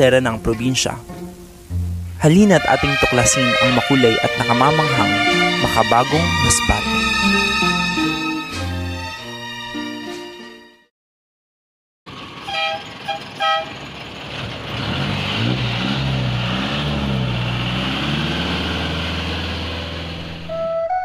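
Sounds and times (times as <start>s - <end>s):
traffic rumble: 0.0s - 8.5s, 12.1s - 20.6s
horn toots: 2.4s - 9.2s, 12.4s - 13.8s
vehicle engine: 12.1s - 20.6s.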